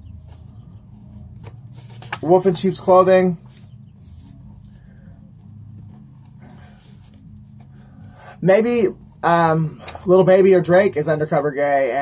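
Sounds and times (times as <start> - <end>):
low hum: 0.0 - 11.6
cards being shuffled: 0.2 - 2.8.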